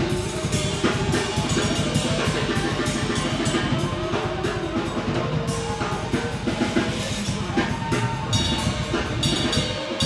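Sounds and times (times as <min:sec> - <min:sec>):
drum kit playing: 0:00.0 - 0:10.0.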